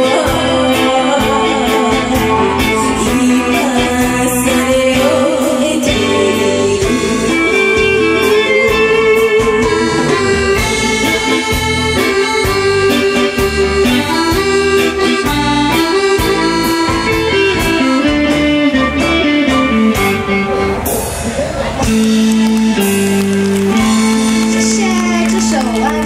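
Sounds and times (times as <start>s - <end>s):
pop backing track over sound system: 0.0s - 26.0s.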